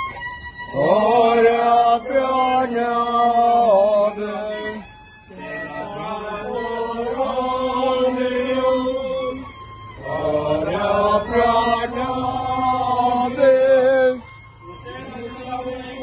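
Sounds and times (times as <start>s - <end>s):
group chanting a hymn: 0.7s - 4.6s, 5.3s - 16.0s.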